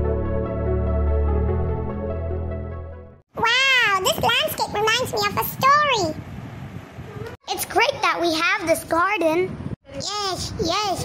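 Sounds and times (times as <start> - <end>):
intro music: 0.0 - 3.2
high-pitched cartoon voice speaking: 3.4 - 6.2, 7.2 - 11.0.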